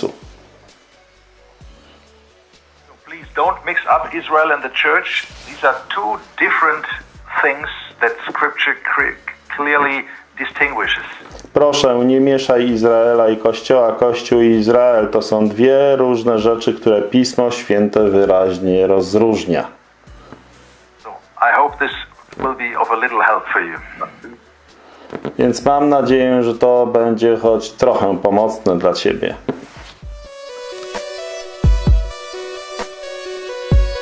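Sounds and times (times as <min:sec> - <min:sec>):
man talking over video call: 0:02.9 - 0:19.8, 0:21.0 - 0:24.4, 0:25.4 - 0:29.5.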